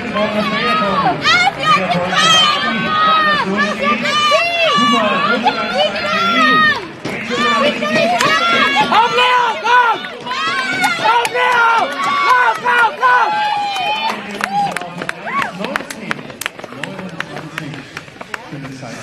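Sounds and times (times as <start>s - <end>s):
crowd murmur: 0.0s - 19.0s
excited high-pitched shouting: 0.3s - 14.1s.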